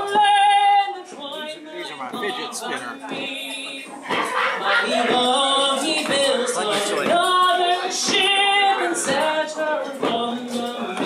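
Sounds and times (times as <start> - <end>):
woman singing ballad: 0.0 - 11.0.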